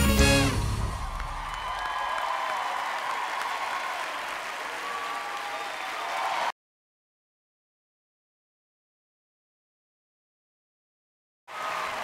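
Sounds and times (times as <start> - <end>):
dance music: 0.0 - 1.4
audience applauding and cheering: 0.0 - 6.6, 11.5 - 12.0.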